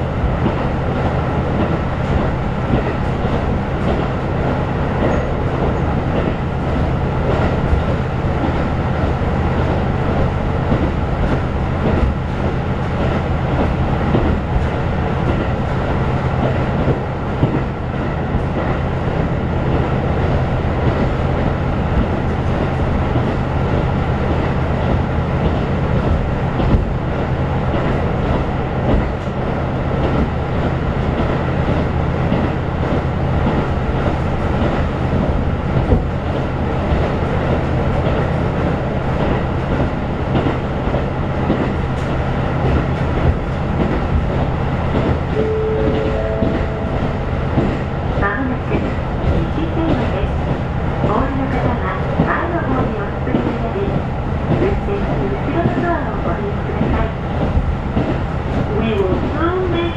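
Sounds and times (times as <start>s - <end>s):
train wheels rumbling on rails: 0.0s - 59.9s
light track clicks: 0.3s - 59.9s.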